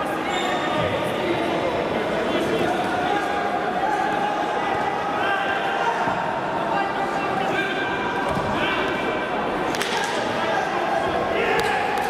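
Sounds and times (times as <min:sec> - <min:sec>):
crowd chatter and shouts: 0:00.0 - 0:12.0.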